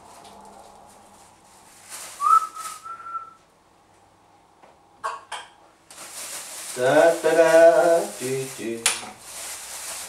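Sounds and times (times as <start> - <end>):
rustling and handling noises: 0.0 - 3.1, 5.9 - 10.0
person whistling short note: 2.2 - 3.4.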